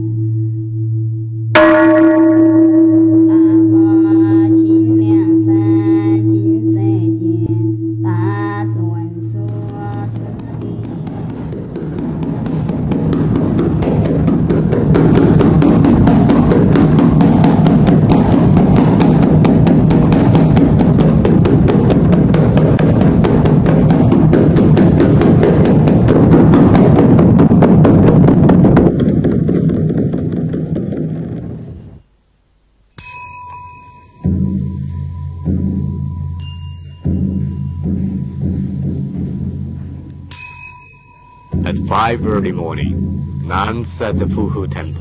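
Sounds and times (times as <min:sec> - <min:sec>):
rapid drumming: 0:09.1 - 0:32.0, 0:34.2 - 0:45.0.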